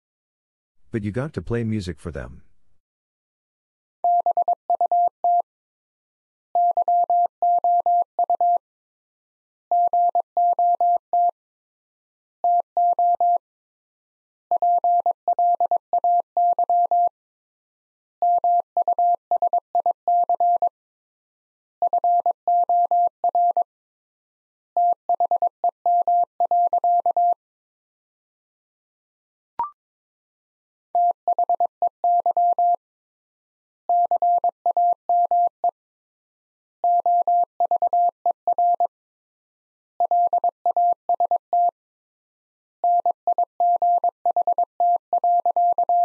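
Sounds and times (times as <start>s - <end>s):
morse code beeps: 42.9s - 46.0s.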